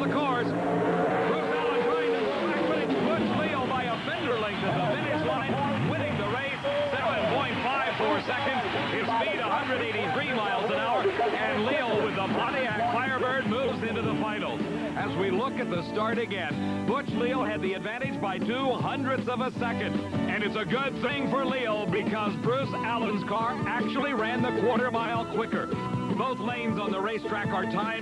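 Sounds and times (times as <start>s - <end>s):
steady engine note: 0.0s - 7.1s
drag car engines winding down: 0.0s - 15.0s
overlapping voices: 0.0s - 16.1s.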